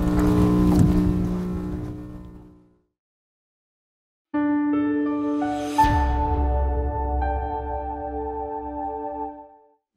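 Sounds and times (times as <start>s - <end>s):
humming drone of held tones: 0.0s - 2.8s.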